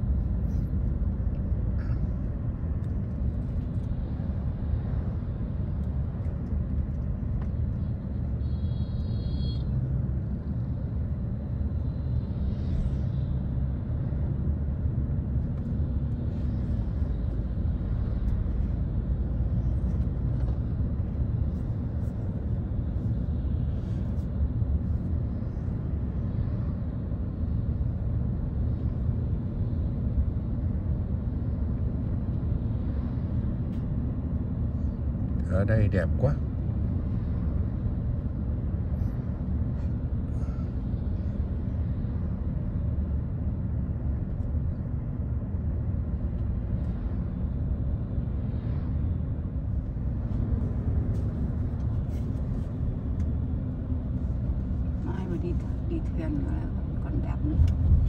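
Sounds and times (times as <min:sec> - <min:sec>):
vehicle road and engine rumble: 0:00.0 - 0:58.0.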